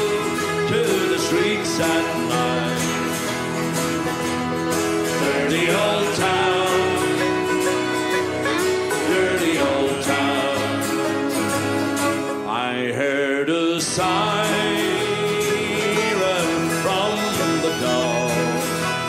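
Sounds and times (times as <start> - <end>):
folk melody line: 0.0 - 19.0
strummed acoustic guitars: 0.0 - 19.0.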